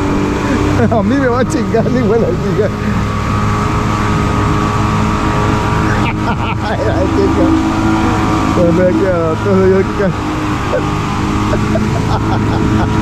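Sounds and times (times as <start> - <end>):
outboard motor running: 0.0 - 13.0.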